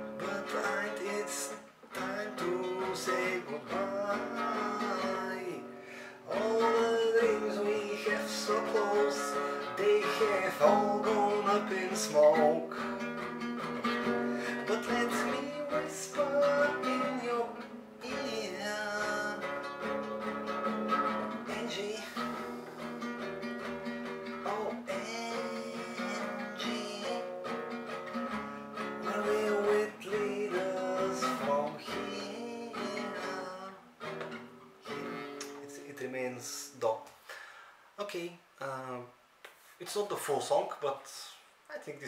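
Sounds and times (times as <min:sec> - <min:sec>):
acoustic guitar strumming chords: 0:00.0 - 0:36.2.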